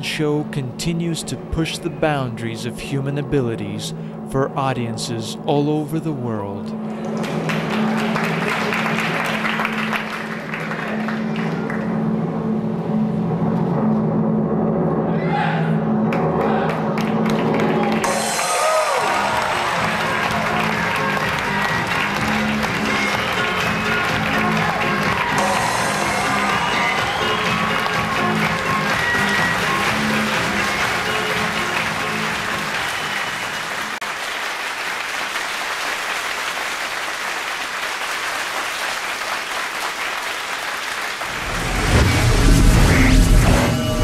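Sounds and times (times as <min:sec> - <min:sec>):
show music: 0:00.0 - 0:15.1, 0:15.7 - 0:34.0, 0:41.2 - 0:44.0
audience applauding: 0:06.9 - 0:11.9, 0:16.1 - 0:42.2
bass-heavy music cue: 0:10.9 - 0:33.2, 0:41.3 - 0:44.0.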